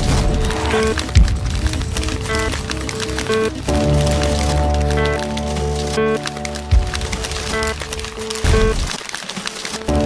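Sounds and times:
crackling noise: 0.0s - 10.0s.

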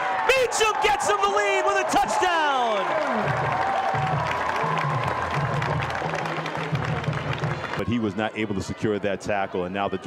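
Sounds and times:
stadium crowd cheering and clapping: 0.0s - 10.0s.

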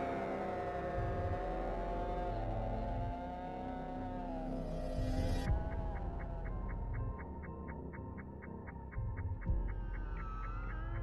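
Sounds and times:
dissonant wavering drone tones: 0.0s - 11.0s.

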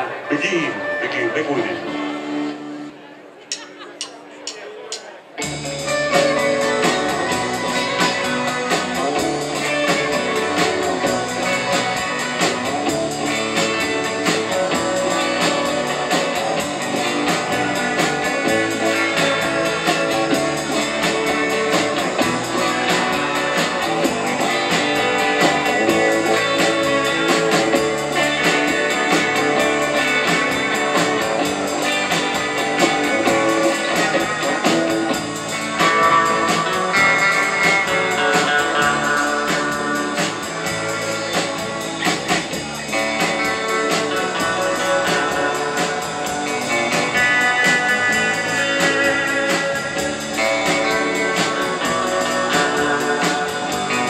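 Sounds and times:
bass guitar: 0.0s - 54.0s
electric guitar band instrumental: 0.0s - 54.0s
drum kit: 3.5s - 54.0s.

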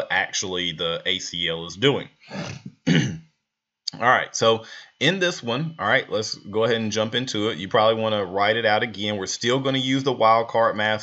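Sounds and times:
man clearing his throat: 2.3s - 3.2s.

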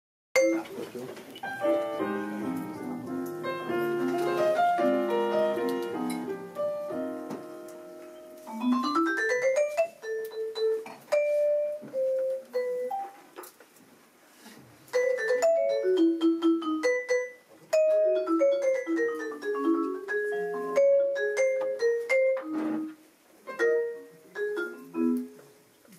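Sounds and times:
vibraphone: 0.4s - 0.6s, 3.4s - 13.2s, 15.0s - 22.9s, 23.5s - 25.4s
piano playing jazz: 0.4s - 13.4s, 14.9s - 25.6s.

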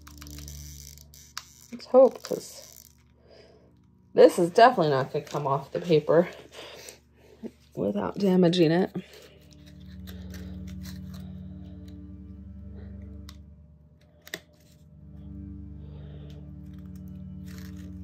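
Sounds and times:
soft background music: 7.8s - 18.0s
paper crinkling: 9.0s - 12.0s, 16.5s - 18.0s.

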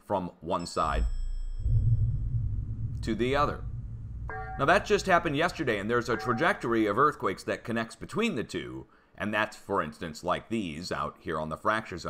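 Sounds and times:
faint high tones: 0.7s - 7.0s
low bass drone: 1.0s - 6.7s.

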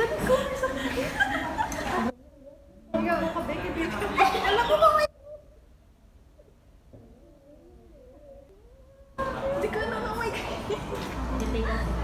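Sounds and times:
people laughing and talking: 0.0s - 5.7s, 7.2s - 12.0s.

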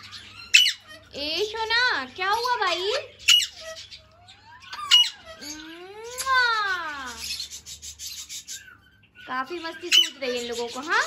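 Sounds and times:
parakeet squawks: 0.0s - 11.0s.

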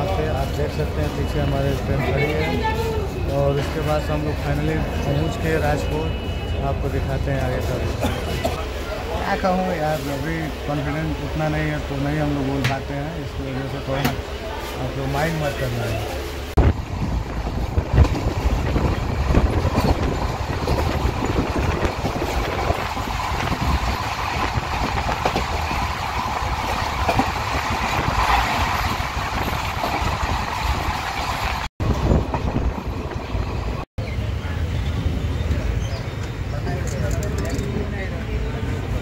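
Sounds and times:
passenger train rumbling: 0.0s - 39.0s.

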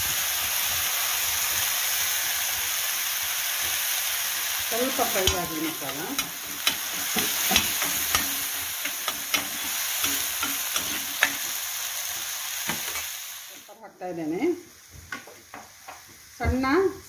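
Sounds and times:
paste sizzling in oil: 0.0s - 16.8s
spoon clicking and scraping pan: 5.1s - 11.6s.

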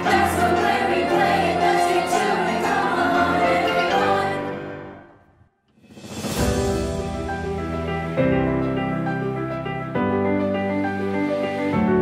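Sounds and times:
choir singing held notes: 0.0s - 5.2s
piano accompaniment: 0.0s - 5.3s, 5.9s - 12.0s.

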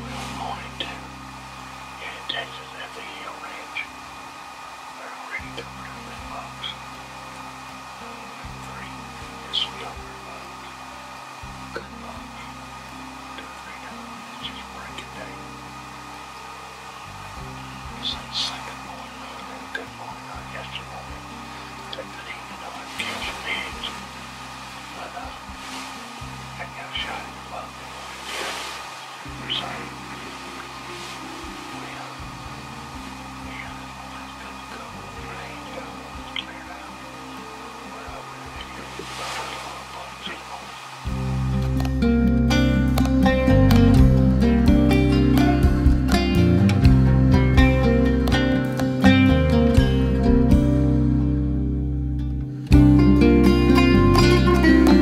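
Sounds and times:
quiet background music: 0.0s - 55.0s.

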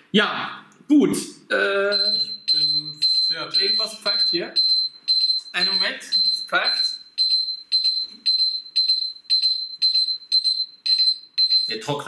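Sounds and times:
tumble dryer beeping: 1.9s - 12.0s.

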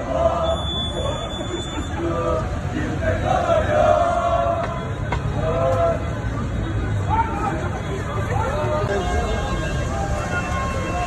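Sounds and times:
crowd of fans chanting: 0.0s - 11.0s
road traffic rumble: 0.0s - 11.0s.

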